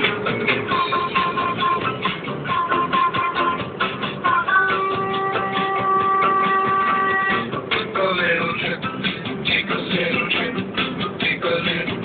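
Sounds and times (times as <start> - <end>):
music on car radio: 0.0 - 12.0.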